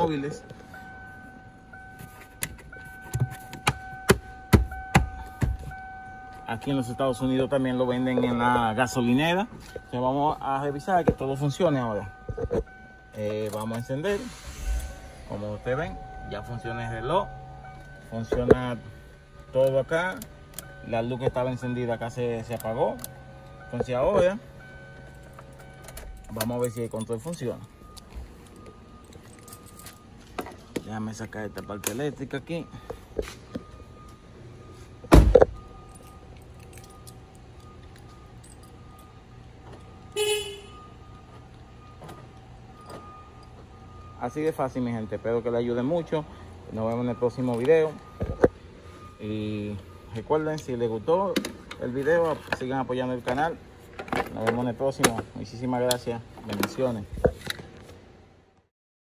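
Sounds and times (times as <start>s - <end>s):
faint thin tone: 13.8s - 19.0s.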